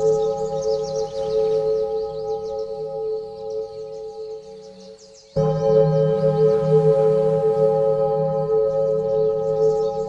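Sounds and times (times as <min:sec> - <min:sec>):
bell-like meditation music: 0:00.0 - 0:10.0
birdsong chirping: 0:00.0 - 0:10.0
low drone: 0:00.0 - 0:10.0.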